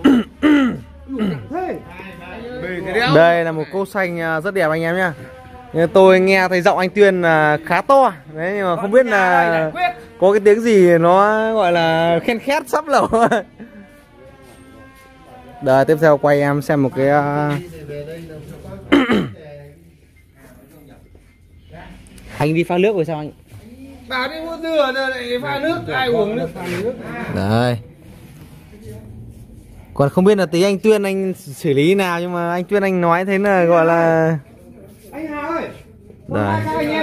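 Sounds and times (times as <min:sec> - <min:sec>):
faint background voices: 0:00.0 - 0:11.0, 0:23.3 - 0:30.2.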